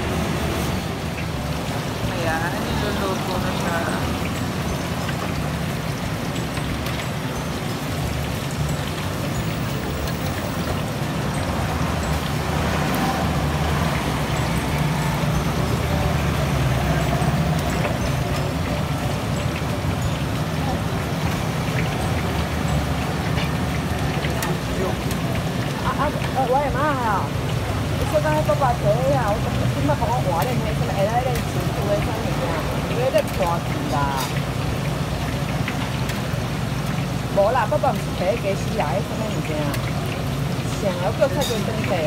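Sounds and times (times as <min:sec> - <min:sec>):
tofu sizzling in hot oil: 0:00.0 - 0:42.0.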